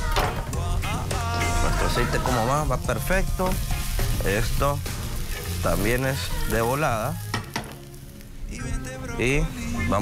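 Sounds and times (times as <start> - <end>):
onion sizzling in oil: 0.0 - 10.0.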